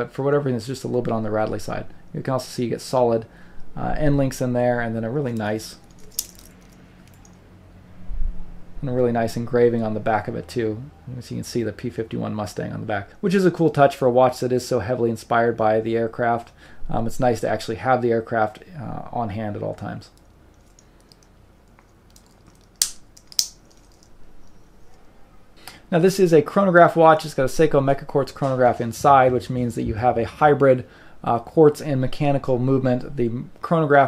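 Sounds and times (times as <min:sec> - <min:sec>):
sharp metallic clasp clicks: 0:05.4 - 0:07.4, 0:20.2 - 0:24.1
metal watch bracelet clinking: 0:05.8 - 0:07.4, 0:20.5 - 0:24.6.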